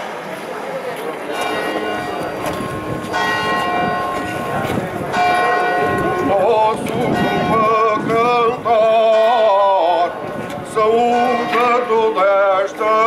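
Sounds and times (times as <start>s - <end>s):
busy street murmur: 0.0s - 13.0s
church bell striking: 1.3s - 9.8s, 11.1s - 13.0s
man singing: 6.3s - 13.0s.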